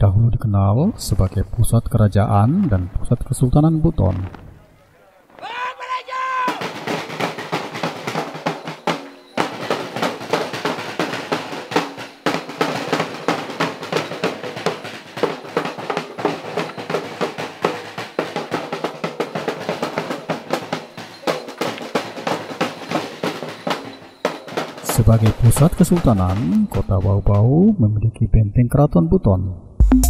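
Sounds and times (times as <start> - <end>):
fast drumming on traditional drums: 5.5 - 27.6.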